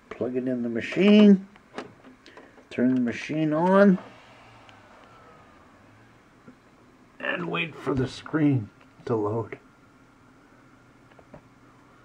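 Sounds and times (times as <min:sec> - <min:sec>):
low hum: 0:03.6 - 0:09.0.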